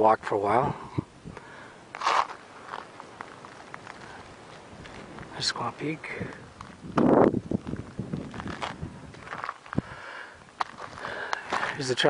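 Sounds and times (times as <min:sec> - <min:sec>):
footsteps on rocky dirt trail: 0:01.3 - 0:12.0.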